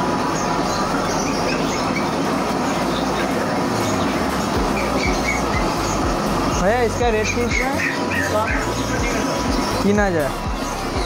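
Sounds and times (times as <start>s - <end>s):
busy market din: 0.0s - 11.0s.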